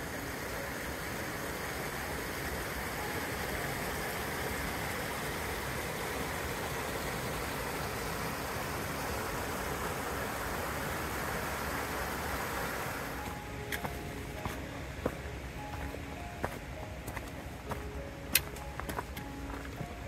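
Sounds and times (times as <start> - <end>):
creek rushing over rocks: 0.0 - 20.0.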